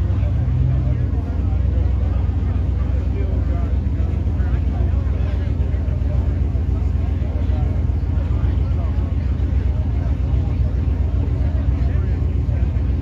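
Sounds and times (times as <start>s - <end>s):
crowd chatter: 0.0s - 13.0s
race car engines idling: 0.0s - 13.0s.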